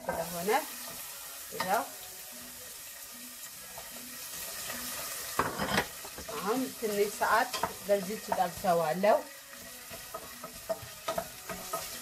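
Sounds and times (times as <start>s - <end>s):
carrots sizzling in a pot: 0.0s - 12.0s.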